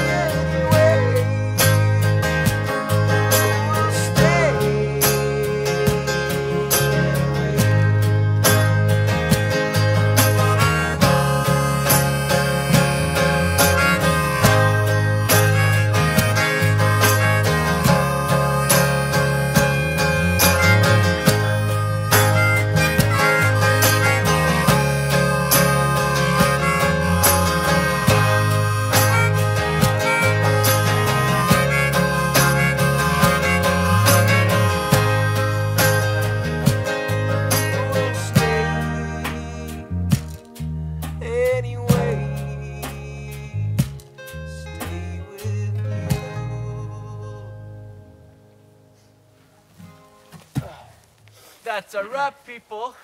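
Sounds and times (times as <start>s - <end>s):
harmonica: 0.0s - 40.5s
steady low bass notes: 0.0s - 49.3s
strummed acoustic guitars: 0.0s - 52.3s.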